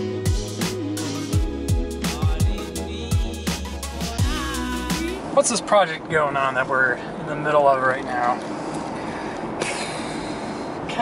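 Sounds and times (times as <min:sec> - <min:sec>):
road and tyre noise in car: 0:04.1 - 0:11.0.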